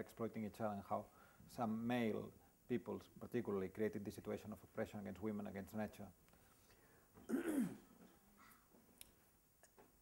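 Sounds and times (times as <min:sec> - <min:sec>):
man clearing his throat: 0:07.2 - 0:08.0.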